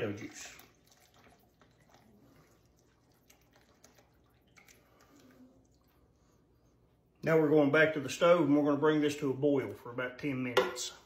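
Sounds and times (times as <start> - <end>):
thick juice pouring into a pot: 0.0 - 6.2.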